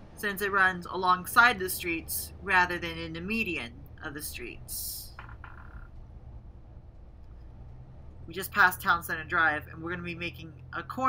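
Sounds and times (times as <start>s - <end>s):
bus engine and road rumble: 0.0s - 11.0s.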